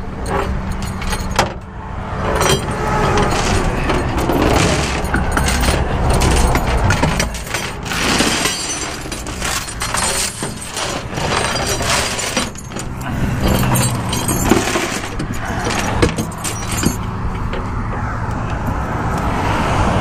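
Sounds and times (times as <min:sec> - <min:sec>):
chains clinking on metal deck: 0:00.0 - 0:01.7, 0:02.3 - 0:17.2
truck engine rumbling: 0:00.0 - 0:20.0.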